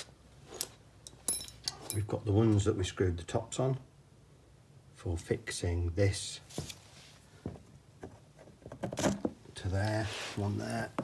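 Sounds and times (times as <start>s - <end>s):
metallic clicks and clinks: 0.6s - 2.1s.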